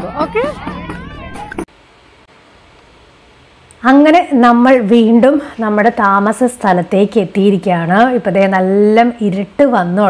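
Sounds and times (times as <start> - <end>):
faint steady hiss: 1.6 - 10.0.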